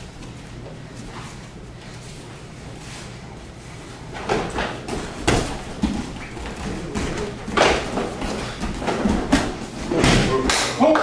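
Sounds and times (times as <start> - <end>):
feet scuffling: 0.0 - 10.4
bodies thudding onto a mat: 4.2 - 10.4.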